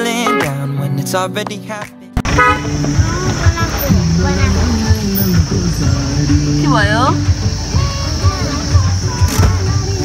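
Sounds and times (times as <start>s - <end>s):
vehicle road noise: 2.2s - 10.0s
short horn toot: 2.3s - 2.8s
people talking: 3.0s - 10.0s.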